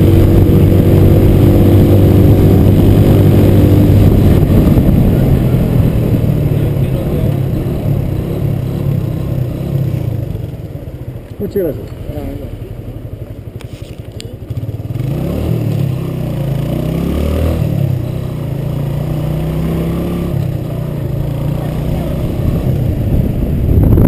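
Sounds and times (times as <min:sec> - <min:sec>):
motorcycle engine: 0:00.0 - 0:24.0.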